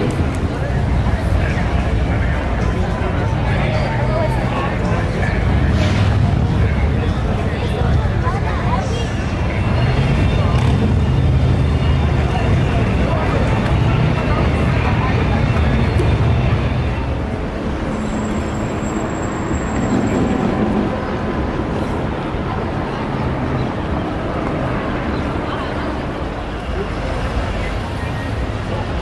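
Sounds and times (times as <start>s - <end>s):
heavy vehicle engine: 0.0s - 29.0s
street traffic rumble: 0.0s - 29.0s.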